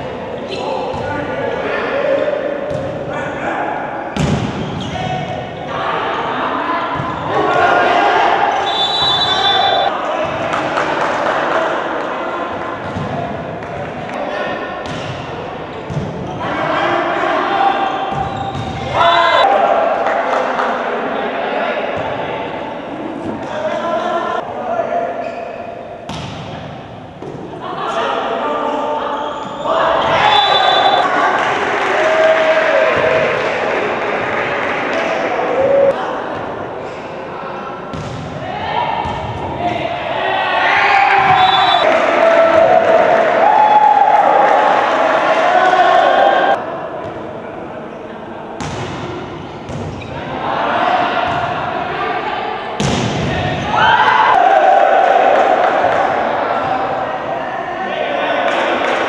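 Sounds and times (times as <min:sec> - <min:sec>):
volleyball hitting floor: 0:04.2 - 0:04.7
people shouting in hall: 0:04.9 - 0:12.5, 0:18.8 - 0:21.8, 0:29.6 - 0:36.3, 0:38.4 - 0:46.8, 0:50.2 - 0:59.0.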